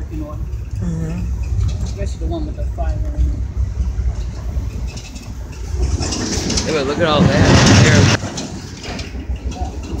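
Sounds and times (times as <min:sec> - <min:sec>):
train rumble inside carriage: 0:00.0 - 0:10.0.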